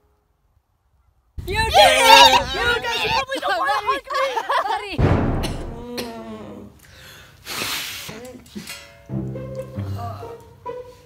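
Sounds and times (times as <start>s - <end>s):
young voices shouting excitedly: 1.4s - 5.0s.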